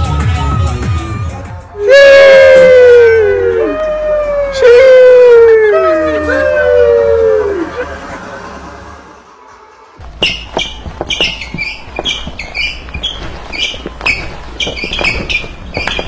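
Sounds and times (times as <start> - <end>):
long falling howls: 1.8 - 8.2.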